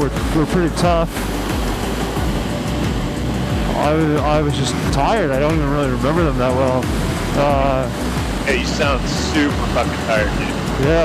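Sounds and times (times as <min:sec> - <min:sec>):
motorcycle wind and road noise: 0:00.0 - 0:11.0.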